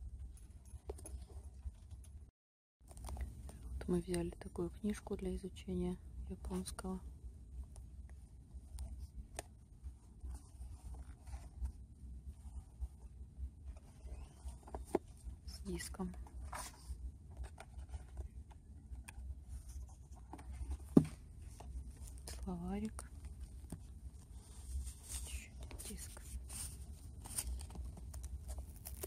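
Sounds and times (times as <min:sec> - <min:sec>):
low steady hum: 0:02.9 - 0:29.0
handling rustle: 0:13.7 - 0:29.0
person speaking: 0:15.4 - 0:16.6, 0:22.1 - 0:23.2, 0:25.0 - 0:26.8.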